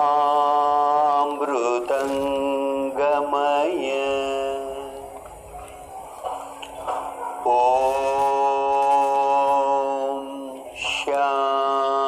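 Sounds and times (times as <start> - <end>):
person chanting long notes: 0.0 - 6.6, 7.4 - 12.0.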